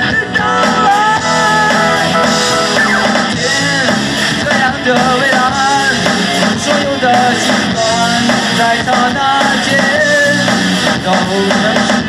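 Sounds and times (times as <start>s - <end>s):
live rock band playing: 0.0s - 12.0s
man singing: 0.0s - 12.0s.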